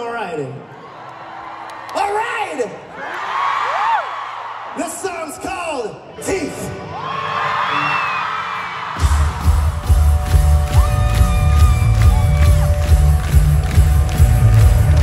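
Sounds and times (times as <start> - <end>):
crowd cheering and screaming: 0.6 - 2.3, 2.9 - 4.8, 6.2 - 15.0.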